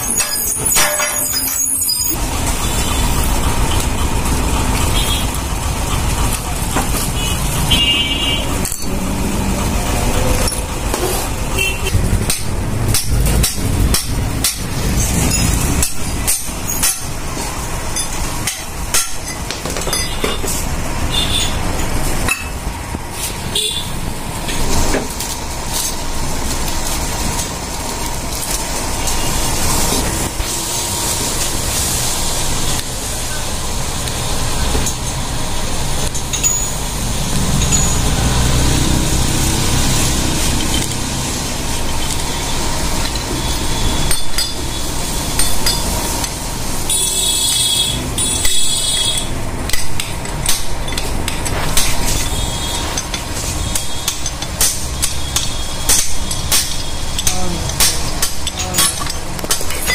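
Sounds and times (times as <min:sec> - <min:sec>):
motor vehicles rumbling: 0:00.0 - 0:59.9
metal knocks and clinks: 0:12.2 - 0:20.6, 0:49.7 - 0:59.9.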